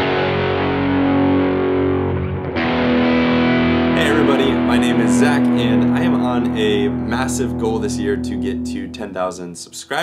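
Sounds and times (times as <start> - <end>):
electric guitar chords ringing: 0.0 - 9.4.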